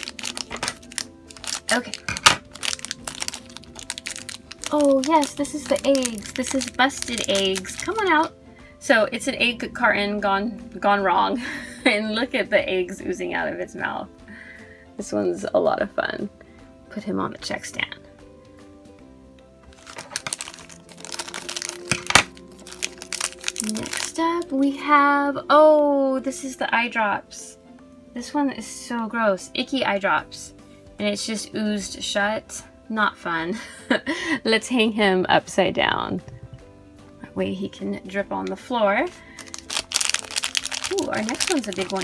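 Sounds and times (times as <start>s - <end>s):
plastic bag crinkling: 0.0s - 8.3s, 19.7s - 24.6s, 39.1s - 42.0s.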